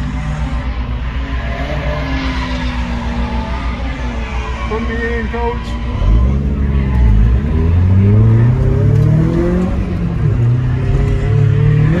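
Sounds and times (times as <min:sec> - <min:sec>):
car engines revving: 0:00.0 - 0:12.0.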